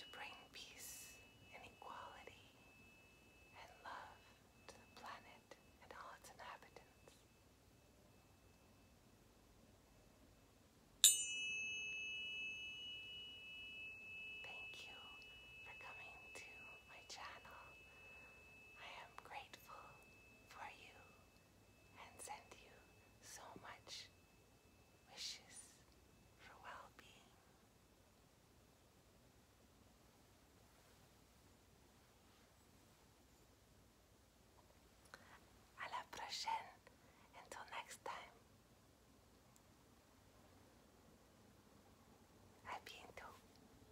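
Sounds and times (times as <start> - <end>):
person whispering: 0.0 - 2.8, 3.6 - 7.2, 14.4 - 18.0, 18.7 - 21.2, 22.0 - 24.1, 25.1 - 25.8, 26.4 - 27.4, 35.2 - 38.4, 42.6 - 43.4
tuning fork ringing: 0.0 - 26.5.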